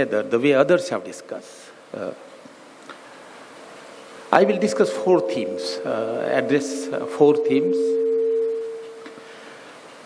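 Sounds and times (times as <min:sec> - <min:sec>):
faint room hiss: 0:00.0 - 0:10.0
microphone feedback ringing tone: 0:04.6 - 0:09.6.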